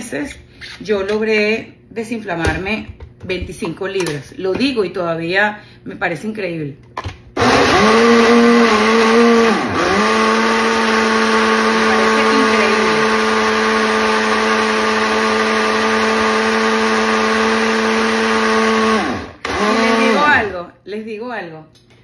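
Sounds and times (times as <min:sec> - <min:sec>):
blender motor humming: 0:07.4 - 0:20.6.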